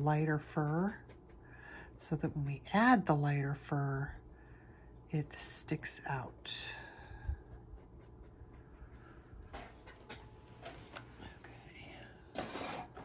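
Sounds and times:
pastel scratching on paper: 7.4 - 9.0.

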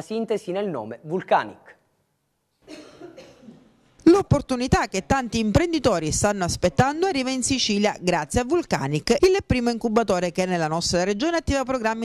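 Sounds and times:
person coughing faintly: 2.6 - 3.8.

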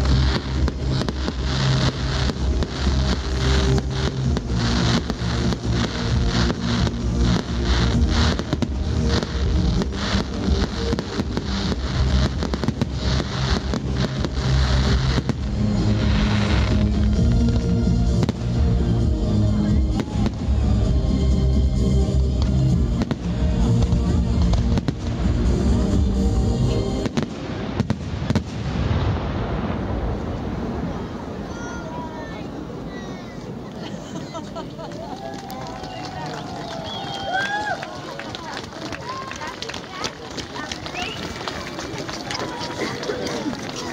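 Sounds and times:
people talking and calling out: 0.0 - 27.3, 30.7 - 43.9
steady music: 0.0 - 27.7
fireworks bursting: 0.0 - 43.9.

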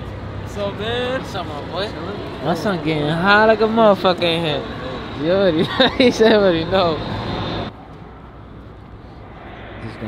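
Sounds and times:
car engines idling: 0.0 - 10.0
rush of noise: 6.9 - 10.0.

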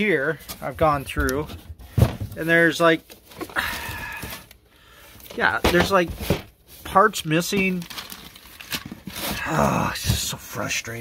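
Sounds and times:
person exhaling: 3.5 - 5.2.

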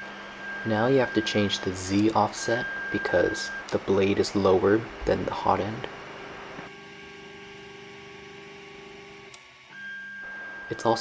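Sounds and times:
stepper motors humming: 0.0 - 11.0.

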